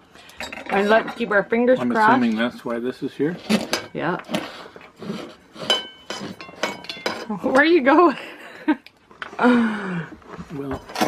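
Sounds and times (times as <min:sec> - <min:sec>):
cutlery clinking on a plate: 0:05.6 - 0:07.6.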